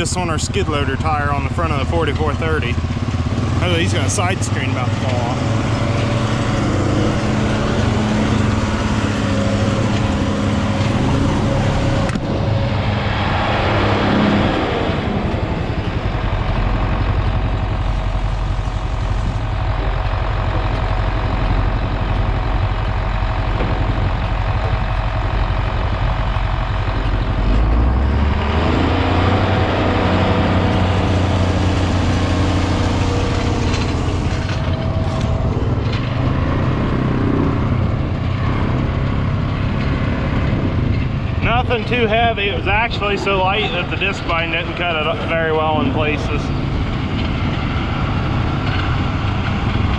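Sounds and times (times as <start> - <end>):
diesel tractor engine running: 0.0 - 49.9.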